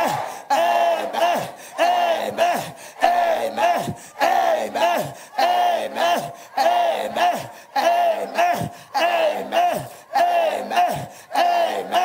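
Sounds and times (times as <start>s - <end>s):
people shouting amen: 0.0s - 12.0s.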